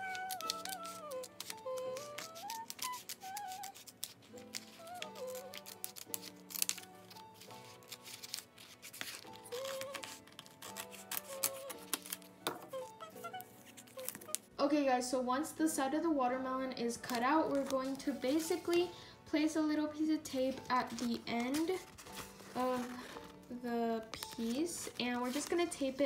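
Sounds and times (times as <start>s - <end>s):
scissors snipping paper: 0.0s - 14.5s, 17.0s - 18.9s, 20.3s - 23.4s, 24.0s - 26.0s
background music: 0.0s - 26.0s.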